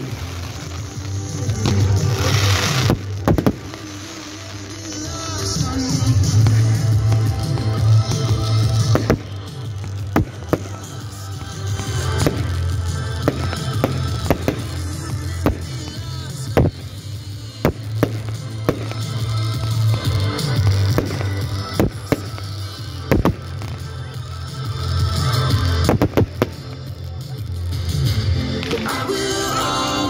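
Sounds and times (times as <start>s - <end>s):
background music: 0.0s - 30.0s
fireworks bursting with bangs: 0.0s - 30.0s.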